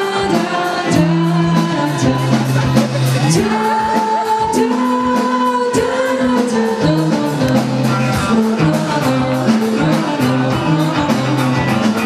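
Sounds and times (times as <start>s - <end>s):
drums steady beat: 0.0s - 12.0s
electric guitar: 0.0s - 12.0s
live rock band playing: 0.0s - 12.0s.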